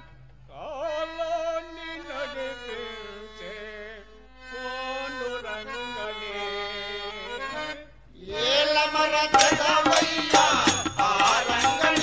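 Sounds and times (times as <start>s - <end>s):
person singing devotional song: 0.0s - 12.0s
percussion strikes: 9.3s - 12.0s.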